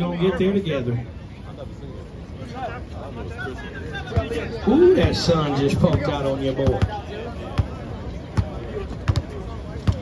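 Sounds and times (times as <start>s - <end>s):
basketball bouncing on court: 5.8s - 7.0s, 7.6s - 10.0s.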